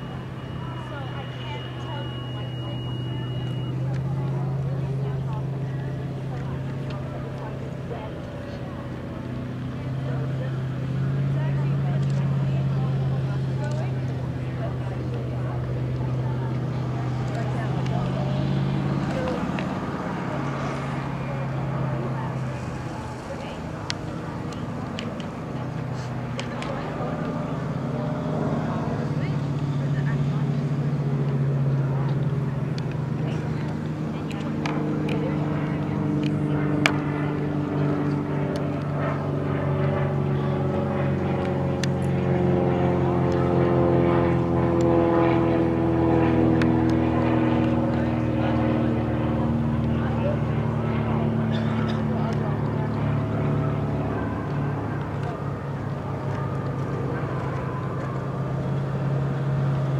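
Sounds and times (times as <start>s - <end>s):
higher engine sound falling in pitch: 0.0s - 59.9s
steady engine drone: 0.0s - 59.9s.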